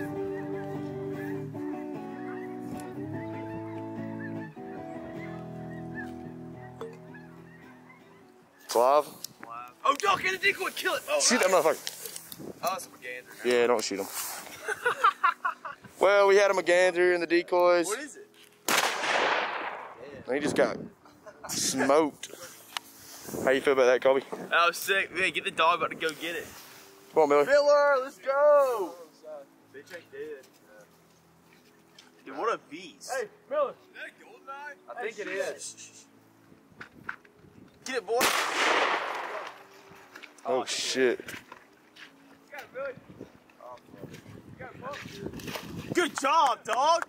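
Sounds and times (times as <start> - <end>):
shotgun shot: 18.7 - 20.0, 38.2 - 39.6.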